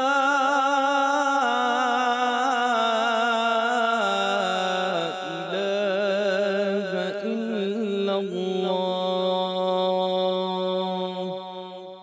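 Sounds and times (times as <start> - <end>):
call to prayer chanted: 0.0 - 12.0.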